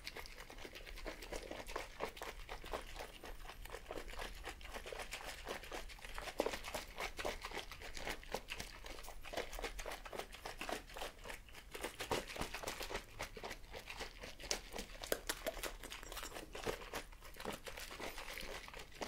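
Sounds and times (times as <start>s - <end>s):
liquid sloshing in plastic cup: 0.0s - 19.0s.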